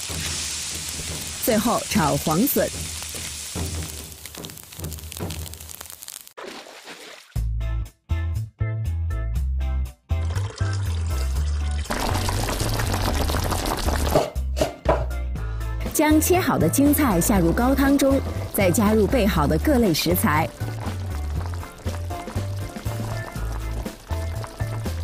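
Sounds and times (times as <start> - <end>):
vegetables sizzling in a wok: 0.0 - 6.4, 17.1 - 25.0.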